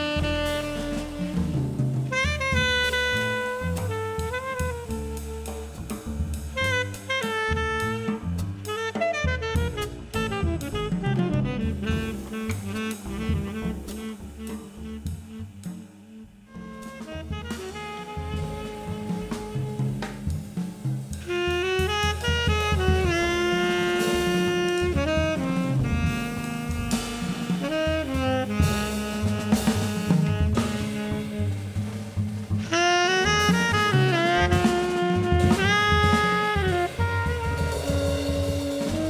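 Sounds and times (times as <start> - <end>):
drums: 0.0 - 39.0
tenor saxophone: 0.0 - 39.0
upright bass: 0.0 - 39.0.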